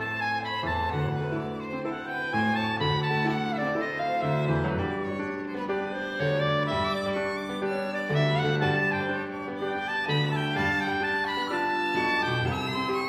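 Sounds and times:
violin clarinet and piano trio: 0.0s - 13.0s.

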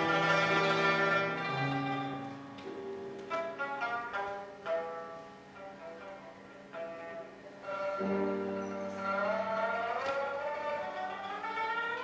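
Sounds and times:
lute sliding glissando: 0.0s - 12.0s
piano accompaniment: 0.0s - 12.0s.

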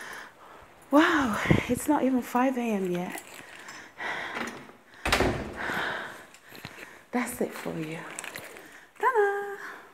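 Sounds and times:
door shutting with thud: 4.4s - 5.8s.

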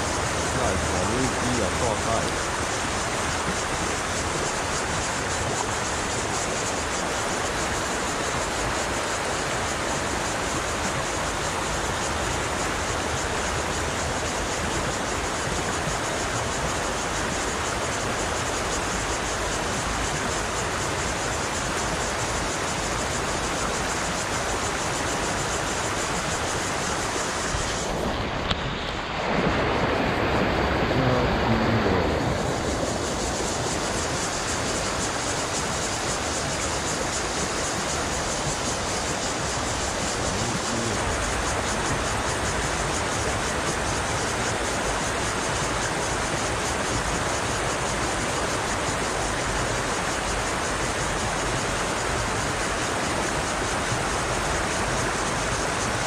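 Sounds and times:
river rapids over rocks: 0.0s - 56.0s.

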